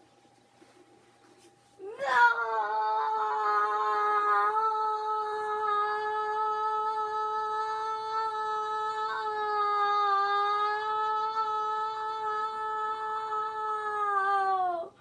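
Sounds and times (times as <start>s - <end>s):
person humming long note: 1.8s - 15.0s.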